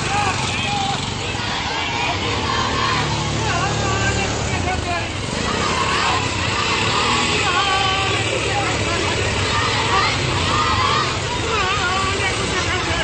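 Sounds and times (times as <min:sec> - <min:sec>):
auto-rickshaw engine running: 0:00.0 - 0:13.0
crowd voices: 0:00.0 - 0:13.0.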